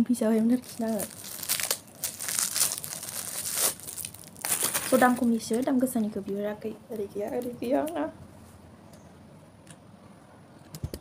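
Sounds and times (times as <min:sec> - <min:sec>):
plastic bag crinkling: 0:00.5 - 0:05.9.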